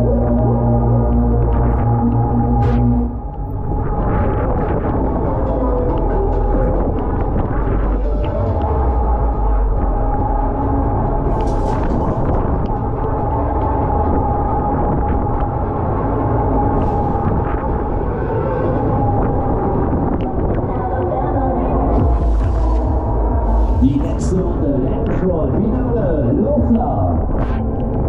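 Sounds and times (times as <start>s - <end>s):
low rumble of ride: 0.0s - 28.0s
wind on microphone: 0.0s - 28.0s
indistinct voice over speakers: 17.9s - 27.6s.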